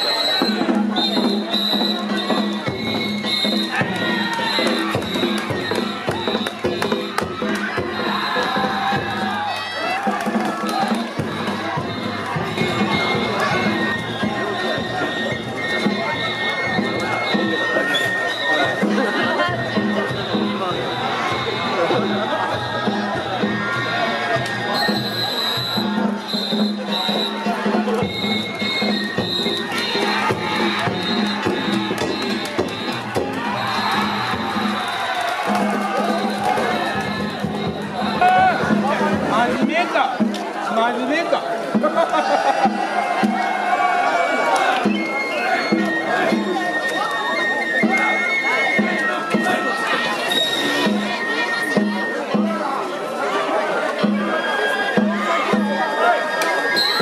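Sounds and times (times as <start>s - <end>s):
crowd shouting: 0.0s - 57.0s
drum and gong strikes: 0.4s - 40.6s, 41.7s - 43.8s, 50.7s - 52.7s.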